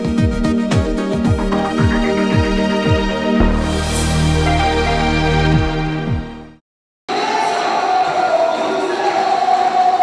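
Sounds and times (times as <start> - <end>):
echoing sports hall din: 1.4 - 5.0
steady droning tone: 1.6 - 5.8.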